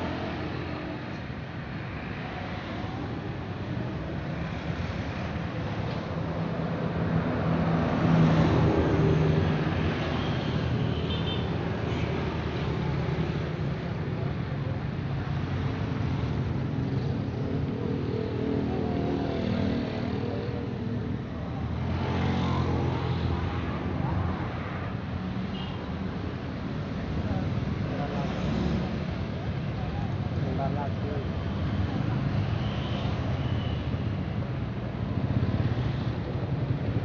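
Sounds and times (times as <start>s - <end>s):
cars and motorcycles rumbling: 0.0s - 37.0s.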